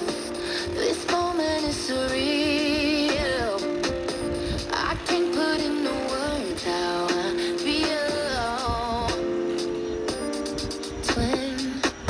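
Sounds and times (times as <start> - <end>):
sung music from radio: 0.0 - 12.0.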